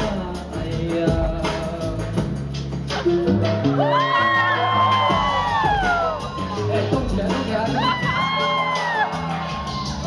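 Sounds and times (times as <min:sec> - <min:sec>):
electronic dance music: 0:01.9 - 0:10.0
long high whoop: 0:03.7 - 0:06.7.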